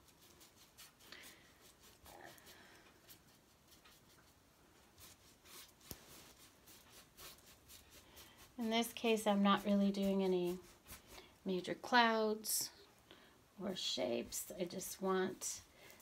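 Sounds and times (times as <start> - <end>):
paintbrush scrubbing on canvas: 0.0 - 11.7.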